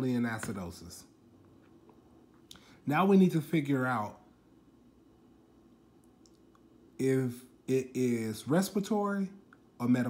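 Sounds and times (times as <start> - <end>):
faint low hum: 0.0 - 10.0
faint small clicks: 6.0 - 6.7.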